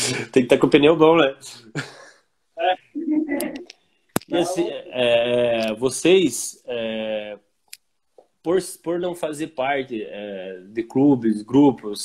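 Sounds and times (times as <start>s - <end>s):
person murmuring: 4.3s - 5.8s.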